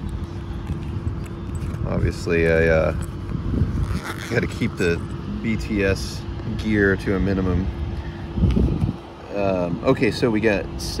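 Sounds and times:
wind buffeting microphone: 0.0s - 9.2s.

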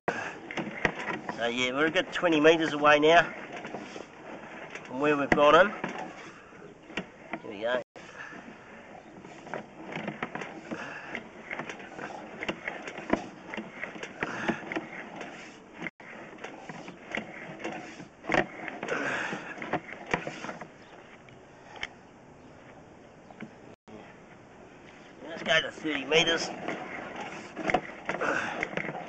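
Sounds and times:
cable clicking and scraping in pipe: 0.1s - 22.0s, 24.3s - 29.0s.

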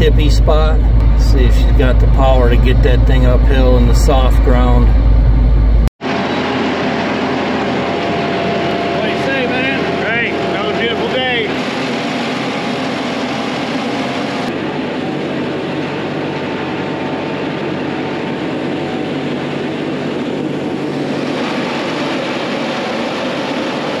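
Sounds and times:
tractor diesel engine under load: 0.0s - 24.0s.

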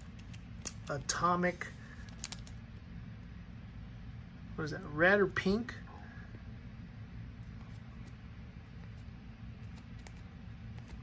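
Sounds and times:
plastic card sleeve rustling: 0.0s - 2.8s
low steady hum: 0.0s - 11.0s.

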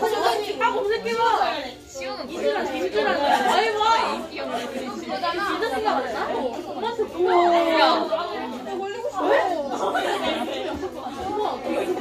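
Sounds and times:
students chattering: 0.0s - 12.0s.

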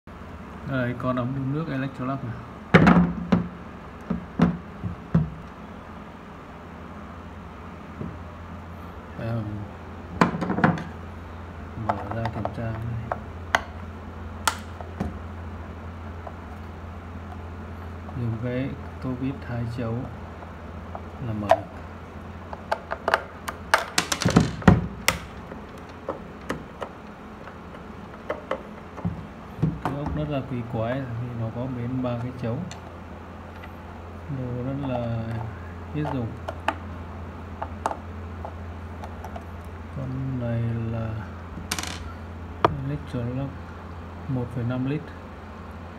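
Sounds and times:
plastic body knocks: 2.8s - 5.4s, 28.2s - 30.3s
quiet handling noises: 11.7s - 13.9s, 16.1s - 39.8s.

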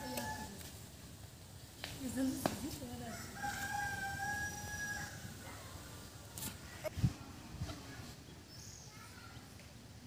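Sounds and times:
rooster crowing: 3.1s - 5.3s.

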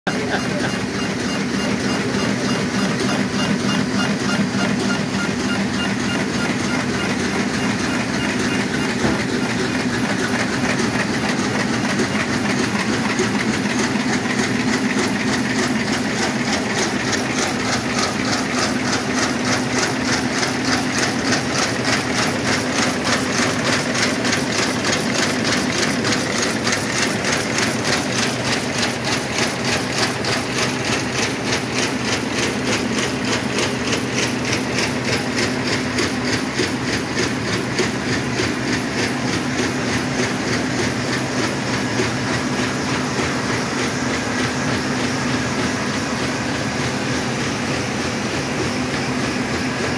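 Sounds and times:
mail inserter machine running: 0.1s - 49.9s
rapid mechanical clacking: 0.1s - 49.9s.

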